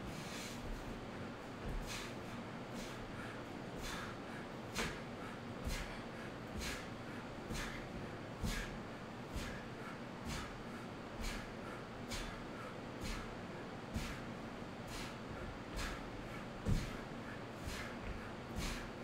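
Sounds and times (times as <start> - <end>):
sharp breaths through the nose: 0.0 - 0.9, 1.6 - 19.0
fan hum: 0.0 - 19.0.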